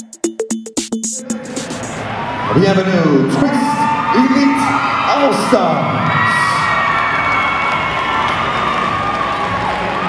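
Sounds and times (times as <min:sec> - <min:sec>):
crowd cheering and screaming: 0:01.3 - 0:10.0.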